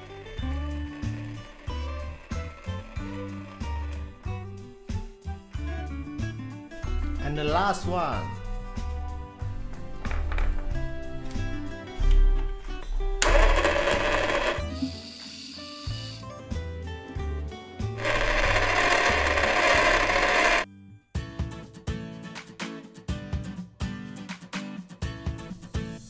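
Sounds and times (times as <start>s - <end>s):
background music: 0.0s - 26.0s
small toy motor whirring: 0.5s - 4.6s, 13.2s - 16.3s, 18.0s - 20.7s.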